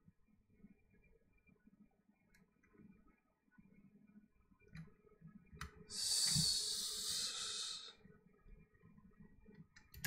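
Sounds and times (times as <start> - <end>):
person exhaling hard: 6.0 - 7.9.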